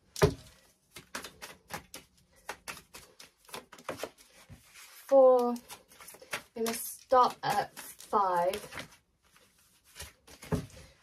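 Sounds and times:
cards clicking and tapping: 0.1 - 4.2, 5.4 - 9.0.

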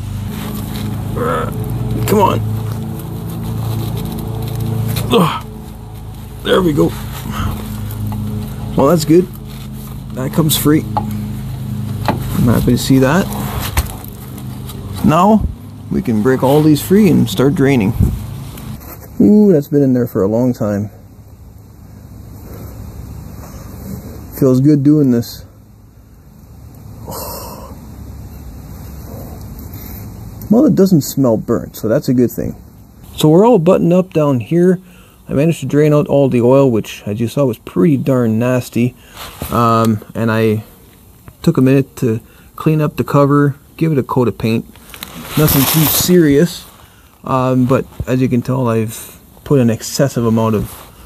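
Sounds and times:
low mechanical hum: 0.0 - 51.0.

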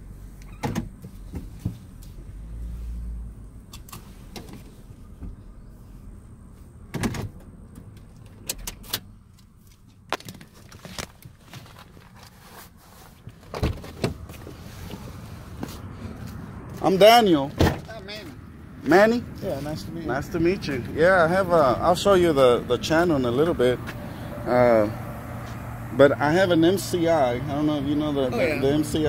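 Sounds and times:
car engine humming: 0.0 - 29.0.

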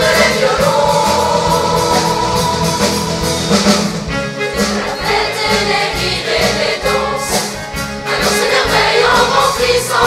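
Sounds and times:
female choir singing: 0.0 - 3.3, 4.5 - 7.4, 8.1 - 10.0
live band: 0.0 - 10.0.

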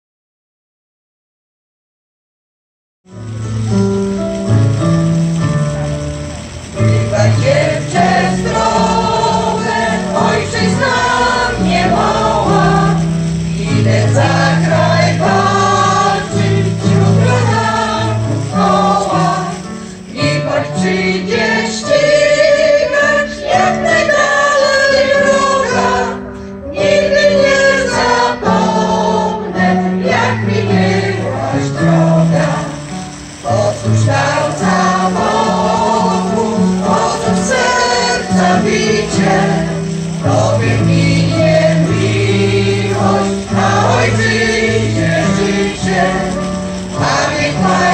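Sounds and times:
electronic keyboard accompaniment: 3.1 - 47.9
choir of women singing: 6.8 - 47.9.

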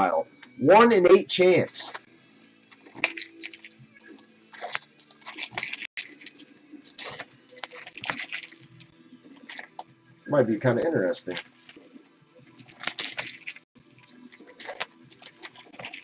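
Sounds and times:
foil wrappers crinkling and tearing: 1.8 - 9.8, 10.5 - 16.0.

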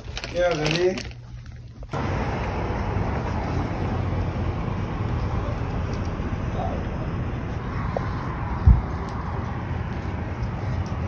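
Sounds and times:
outdoor rumble with hiss: 0.0 - 11.0.

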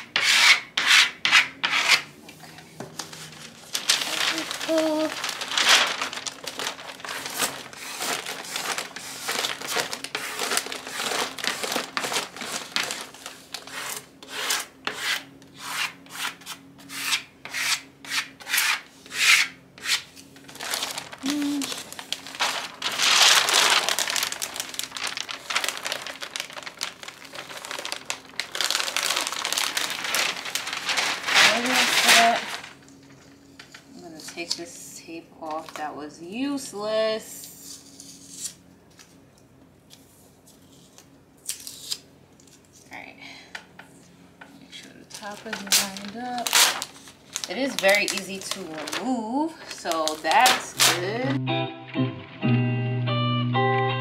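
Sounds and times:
plastic card scraping wallpaper: 0.0 - 32.9, 45.1 - 51.4
paper liner crinkling: 2.4 - 14.9, 20.0 - 34.6, 44.7 - 51.4.

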